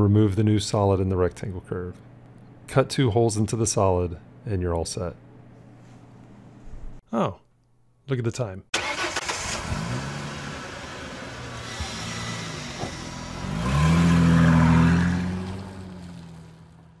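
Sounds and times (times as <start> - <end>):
car engine revving: 8.8 - 16.9.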